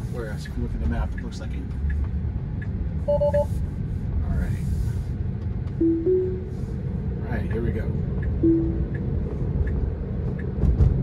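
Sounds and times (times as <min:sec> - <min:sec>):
road and tyre rumble: 0:00.0 - 0:11.0
short tone: 0:03.1 - 0:03.5, 0:05.8 - 0:06.5, 0:08.4 - 0:08.8
two-note rising chime: 0:05.8 - 0:06.5.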